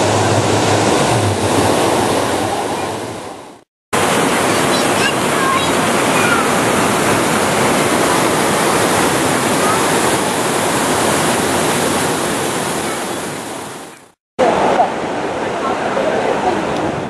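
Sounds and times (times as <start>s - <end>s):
stream water rushing over stone: 0.0s - 17.0s.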